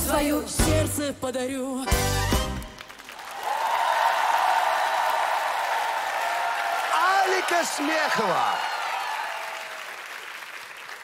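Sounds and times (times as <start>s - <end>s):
audience applauding: 2.6s - 11.0s
held high whistle or cheer: 6.2s - 9.8s.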